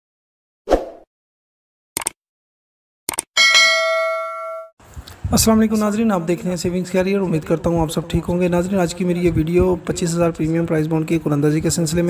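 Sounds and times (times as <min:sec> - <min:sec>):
notification bell ding: 0:03.4 - 0:04.8.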